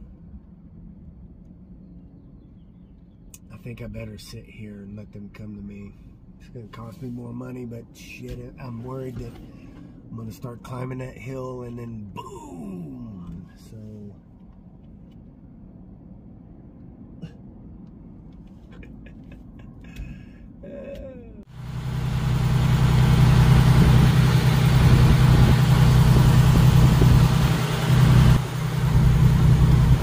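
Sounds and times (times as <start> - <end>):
faint low rumble: 0.0 - 30.0
truck diesel engine droning: 21.4 - 30.0.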